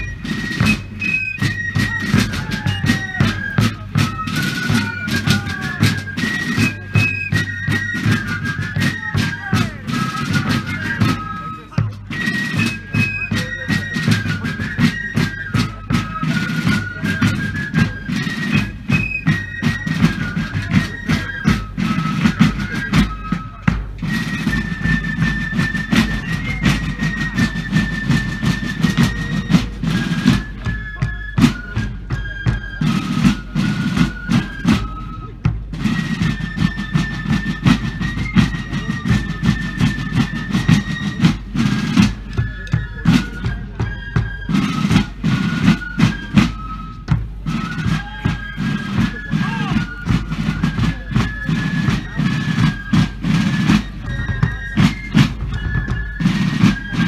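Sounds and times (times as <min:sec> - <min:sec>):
field drums drumming: 0:00.0 - 0:57.0
fife melody: 0:00.0 - 0:57.0.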